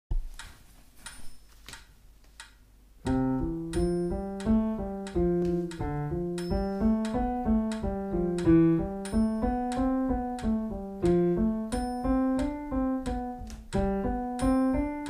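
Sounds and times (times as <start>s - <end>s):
metronome ticking: 2.4s - 15.0s
piano single notes: 3.0s - 15.0s.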